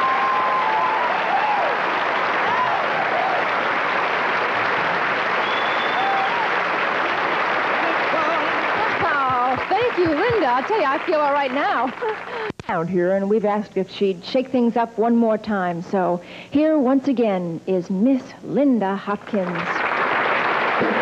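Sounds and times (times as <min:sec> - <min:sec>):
audience applauding and cheering: 0:00.0 - 0:12.5, 0:19.3 - 0:21.0
high whistle: 0:05.4 - 0:06.4.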